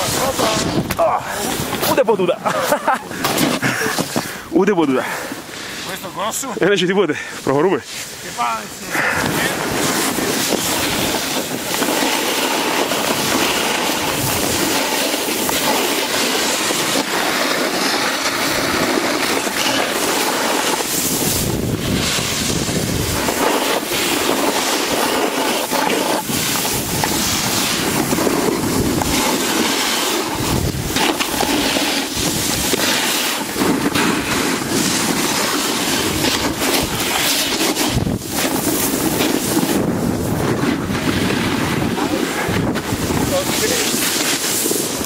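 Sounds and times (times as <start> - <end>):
wind rushing over microphone: 0.0 - 4.7, 8.1 - 45.0
snowboard scraping over snow: 0.0 - 45.0.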